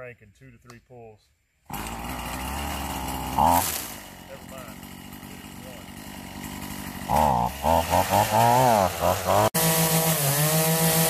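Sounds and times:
string trimmer engine revving: 1.6 - 11.0.

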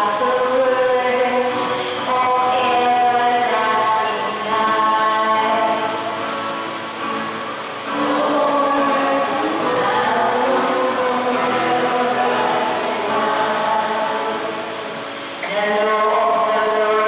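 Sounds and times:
solo voice singing: 0.0 - 6.0, 7.9 - 14.7, 15.4 - 17.0
congregation singing: 0.0 - 6.2, 7.8 - 17.0.

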